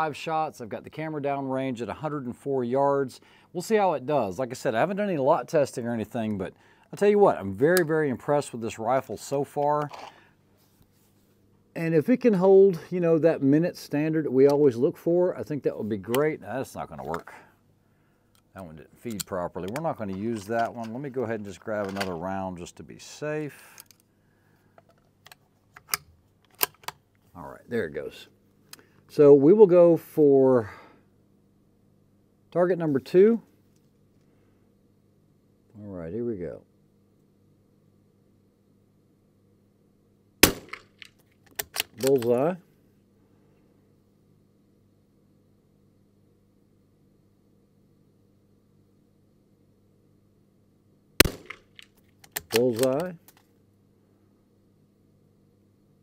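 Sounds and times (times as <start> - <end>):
faint steady hum: 0.0 - 56.0
rifle round loading clicks: 25.3 - 27.0, 40.4 - 42.3, 51.2 - 53.4
rifle shot: 40.4 - 41.0, 51.2 - 51.8.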